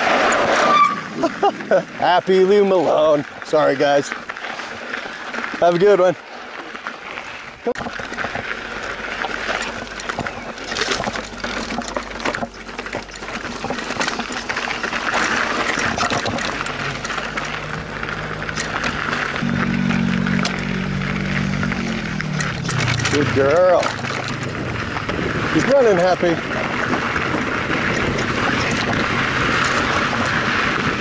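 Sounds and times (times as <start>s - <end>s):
bike rattles and knocks: 0.0s - 31.0s
tyres crunching on gravel: 0.0s - 31.0s
wind on microphone: 23.6s - 31.0s.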